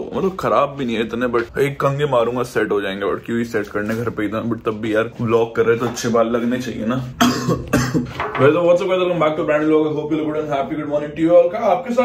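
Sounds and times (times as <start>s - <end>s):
young man speaking: 0.0s - 12.0s
person coughing: 7.2s - 8.2s.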